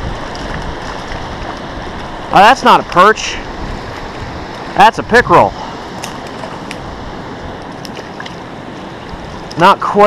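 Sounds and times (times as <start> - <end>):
creek rushing: 0.0 - 10.0.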